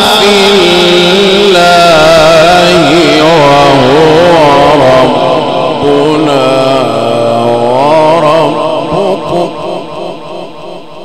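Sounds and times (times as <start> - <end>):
man reciting melodically into microphone: 0.0 - 11.0.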